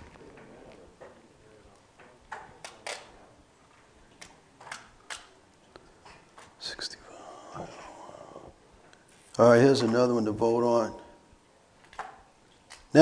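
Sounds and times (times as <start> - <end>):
people whispering: 6.6 - 9.0.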